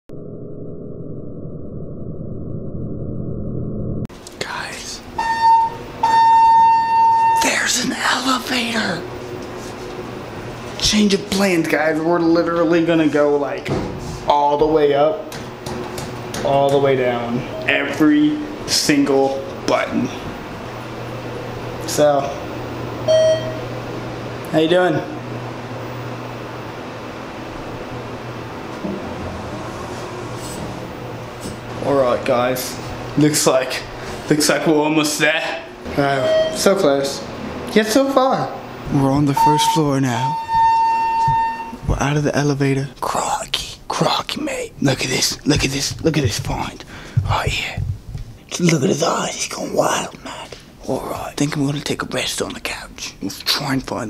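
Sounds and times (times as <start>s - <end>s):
elevator hum: 5.0s - 43.0s, 44.4s - 51.2s
high electronic beep: 5.2s - 7.6s, 23.1s - 23.7s, 36.0s - 36.8s, 39.3s - 41.8s.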